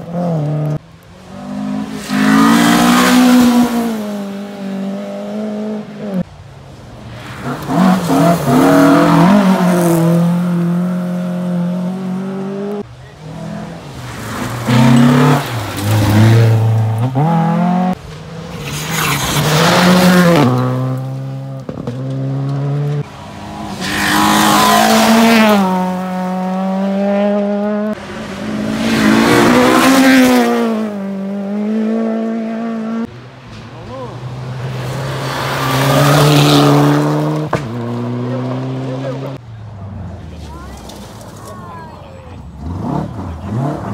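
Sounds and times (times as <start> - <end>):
rally car engines at full throttle: 0.0 - 43.9.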